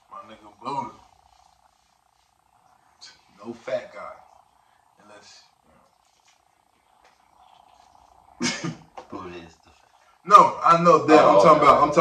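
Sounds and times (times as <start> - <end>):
light steady hiss: 0.0 - 12.0.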